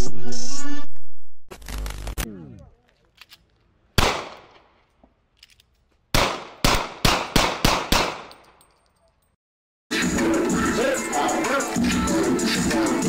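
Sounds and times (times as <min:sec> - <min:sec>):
gunshots echoing: 0:04.0 - 0:04.8, 0:06.1 - 0:08.5.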